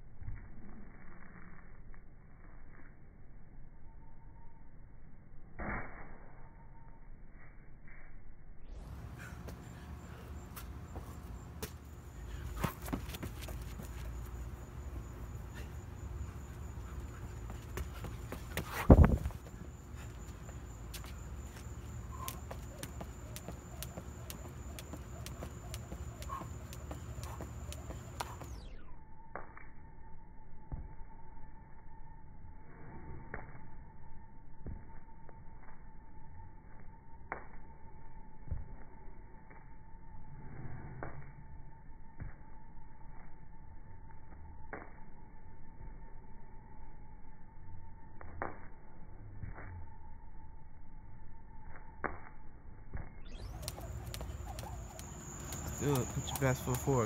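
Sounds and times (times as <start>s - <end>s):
jump rope swishing: 10.4s - 14.5s, 15.5s - 28.6s, 52.9s - 57.0s
hands and sneakers slapping concrete: 10.4s - 14.6s, 16.9s - 28.6s, 52.9s - 57.0s
jump rope ticking on concrete: 15.6s - 28.6s, 51.7s - 57.0s.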